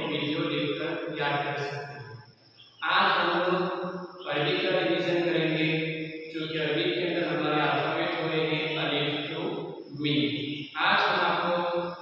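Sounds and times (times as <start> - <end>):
man chanting: 0.0 - 1.9, 2.8 - 12.0.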